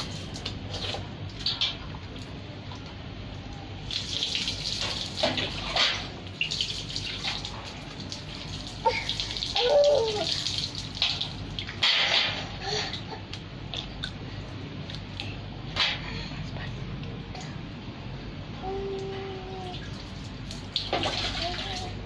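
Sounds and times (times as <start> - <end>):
water pouring and splashing: 0.0 - 3.0, 3.8 - 13.9, 19.6 - 22.0.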